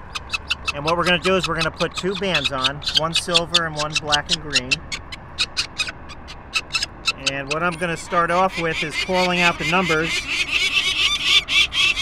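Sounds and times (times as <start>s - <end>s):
falcon chick high-pitched calls: 0.0s - 12.0s.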